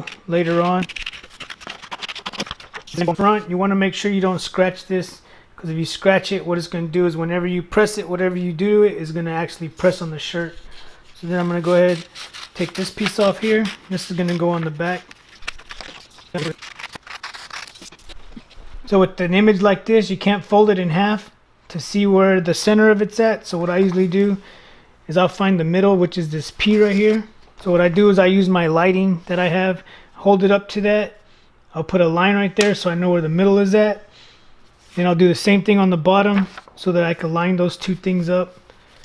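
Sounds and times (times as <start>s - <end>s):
scissors snipping paper: 0.0s - 3.0s, 11.2s - 18.2s
paper rustling: 0.0s - 3.5s, 9.9s - 18.8s, 26.6s - 27.3s, 36.2s - 36.8s, 38.8s - 39.0s.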